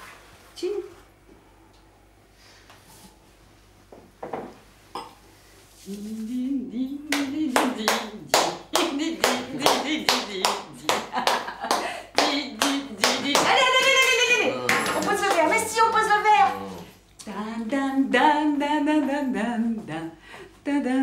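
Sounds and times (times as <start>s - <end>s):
person humming a tune: 5.8s - 10.9s
hands clapping in rhythm: 7.1s - 16.1s.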